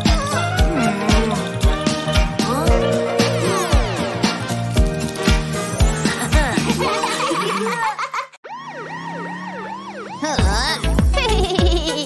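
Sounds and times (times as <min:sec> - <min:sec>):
upbeat children's song: 0:00.0 - 0:07.8
cartoon siren wailing: 0:08.4 - 0:10.8.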